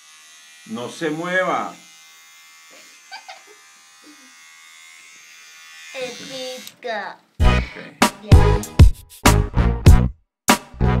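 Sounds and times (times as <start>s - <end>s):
electric hair clippers buzzing: 0.0s - 6.8s.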